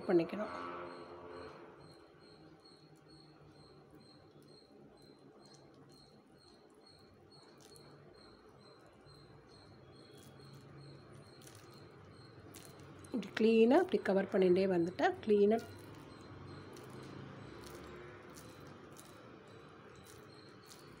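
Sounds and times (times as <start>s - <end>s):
faint high-pitched chirp: 0.0s - 21.0s.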